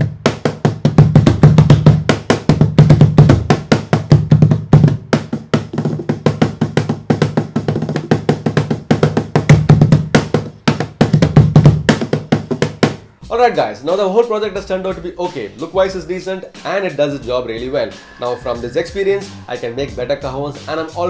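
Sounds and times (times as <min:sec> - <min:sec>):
cajon sharp slaps: 0:00.0 - 0:13.1
cajon bass thumps: 0:00.0 - 0:13.8.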